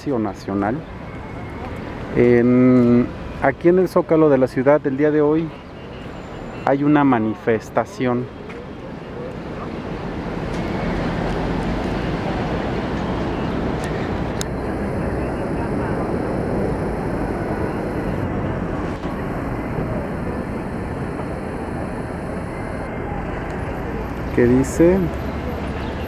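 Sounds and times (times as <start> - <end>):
traffic noise: 0.0 - 26.0
distant voices: 11.1 - 26.0.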